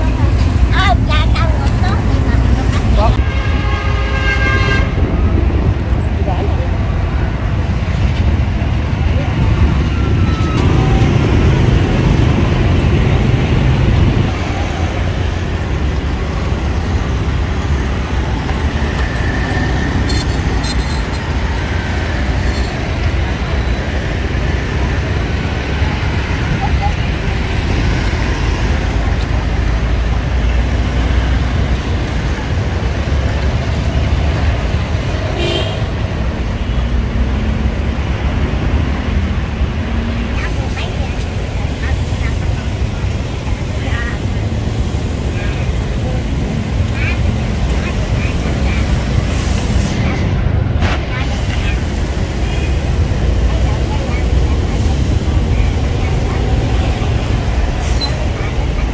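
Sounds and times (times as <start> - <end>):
motorbike and scooter traffic: 0.0 - 58.9.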